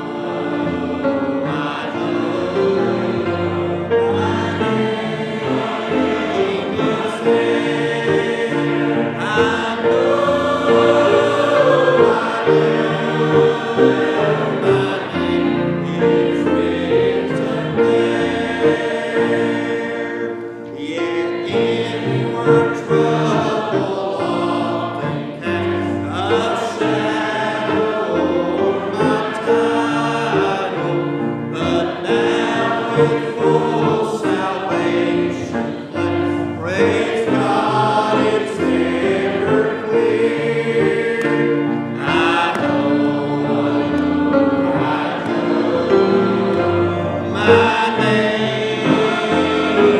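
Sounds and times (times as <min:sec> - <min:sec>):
congregation singing a hymn: 0:00.0 - 0:49.9.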